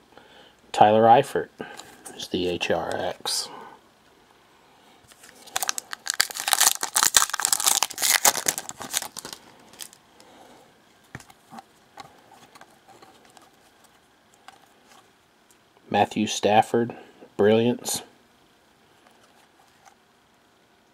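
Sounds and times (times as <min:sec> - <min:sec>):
wrapper tearing and crinkling: 0:05.1 - 0:10.0.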